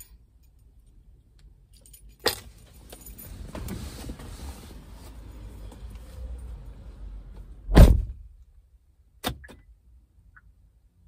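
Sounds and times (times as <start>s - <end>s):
outside noise: 0.0s - 11.0s
keys jingling: 1.6s - 3.8s.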